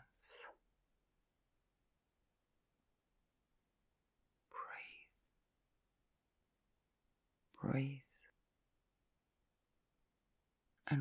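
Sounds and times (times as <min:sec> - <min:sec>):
person whispering: 0:00.0 - 0:00.6, 0:04.5 - 0:05.3, 0:07.5 - 0:08.4.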